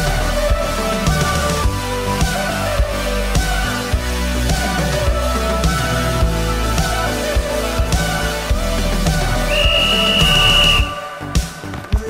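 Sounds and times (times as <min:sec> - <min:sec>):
background music: 0:00.0 - 0:12.0
referee's whistle blast: 0:09.5 - 0:11.2.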